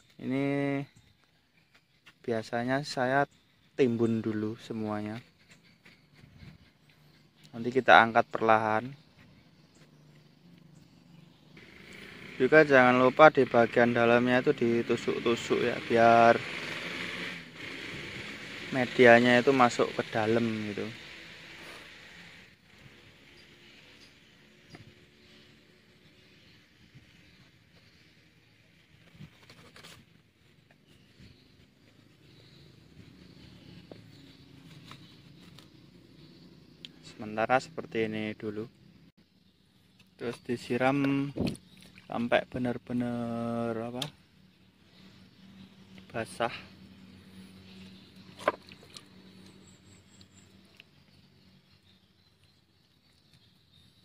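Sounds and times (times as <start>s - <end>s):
sharp scratches: 28.8s - 31.2s
wet soil squelching: 40.1s - 42.7s, 47.7s - 51.2s.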